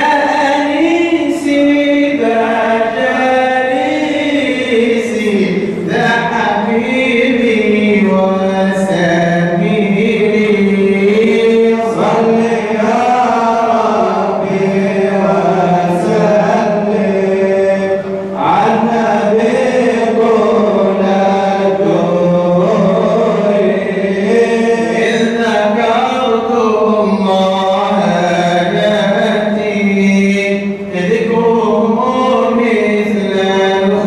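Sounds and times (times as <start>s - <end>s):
men chanting religious praise: 0.0s - 34.0s.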